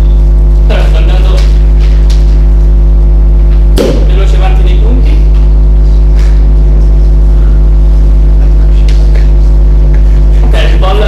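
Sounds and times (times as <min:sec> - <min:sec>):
electrical mains hum: 0:00.0 - 0:11.0
sharp burst of noise: 0:03.8 - 0:04.6.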